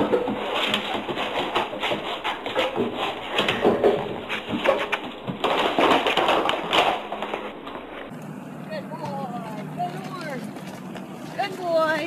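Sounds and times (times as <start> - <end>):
low steady hum: 3.4 - 12.0.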